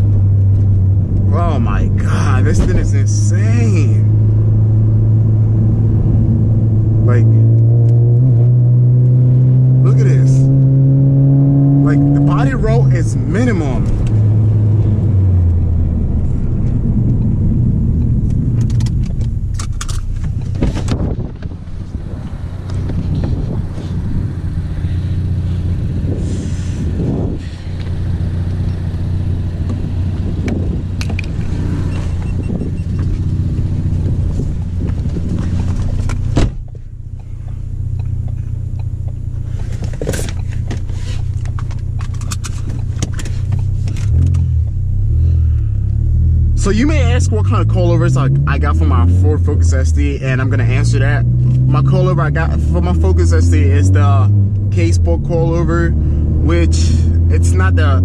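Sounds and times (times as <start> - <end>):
car engine drone from cabin: 0.0 - 58.0
tyre and road noise: 0.0 - 58.0
sharp knocks through car: 35.1 - 36.8.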